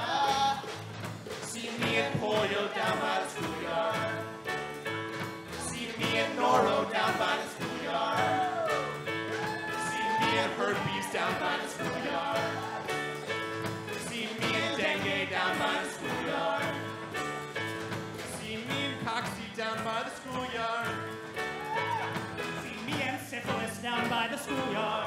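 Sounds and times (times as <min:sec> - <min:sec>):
person singing: 0:00.0 - 0:00.8, 0:01.4 - 0:04.5, 0:05.6 - 0:13.0, 0:14.0 - 0:17.0, 0:21.7 - 0:25.0
live band playing: 0:00.0 - 0:25.0.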